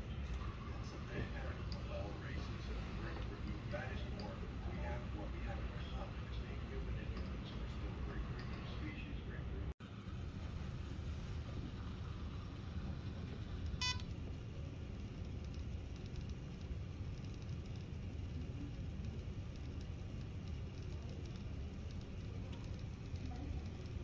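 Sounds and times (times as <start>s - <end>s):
low room rumble: 0.0s - 24.0s
short electronic beep: 13.8s - 14.0s.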